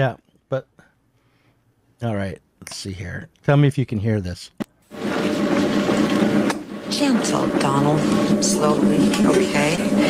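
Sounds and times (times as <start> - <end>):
potter's wheel humming: 4.9 - 10.0.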